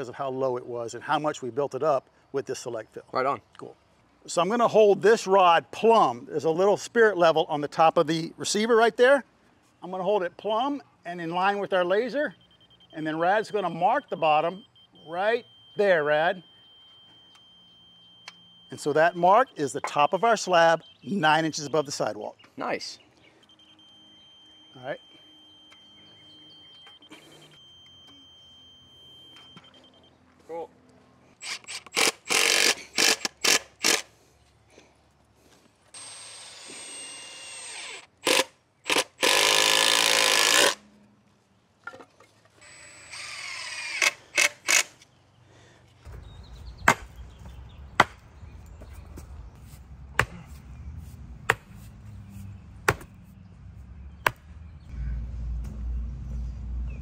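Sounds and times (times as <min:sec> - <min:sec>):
power driver driving screws: 0:31.4 - 0:34.1, 0:36.0 - 0:40.8, 0:42.6 - 0:45.0
sharp knocks: 0:52.8 - 0:53.2.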